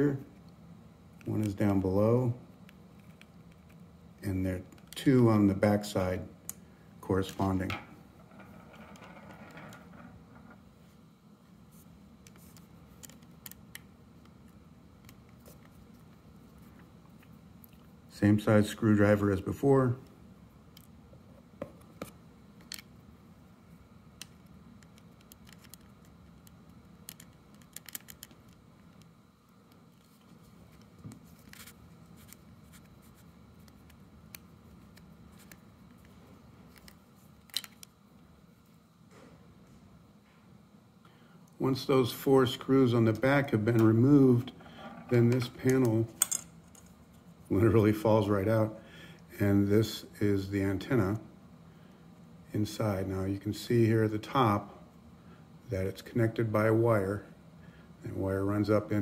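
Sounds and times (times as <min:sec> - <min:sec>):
faint steady hum: 0:00.0 - 0:59.0
soft handling rustle: 0:24.9 - 0:40.4.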